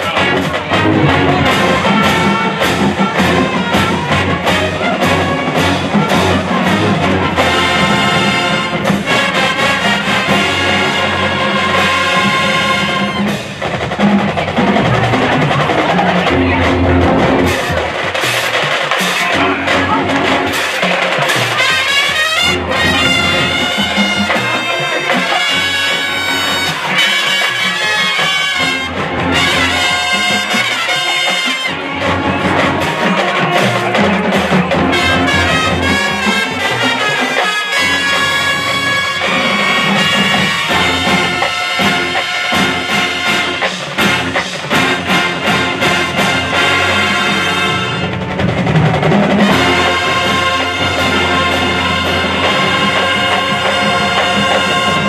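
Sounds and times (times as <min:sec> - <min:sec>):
drum beat: 0:00.0 - 0:55.0
marching band brass: 0:00.0 - 0:55.0.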